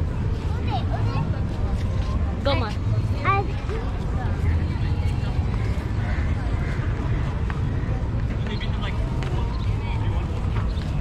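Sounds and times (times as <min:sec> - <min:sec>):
voices of people walking: 0:00.0 - 0:11.0.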